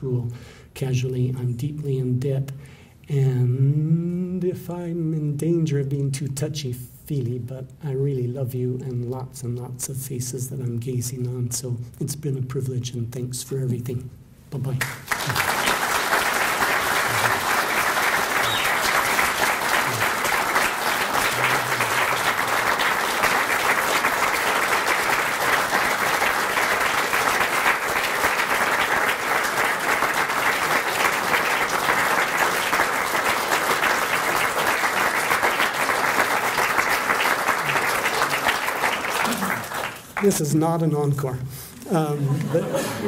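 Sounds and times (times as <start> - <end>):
audience applauding: 14.8 - 40.6.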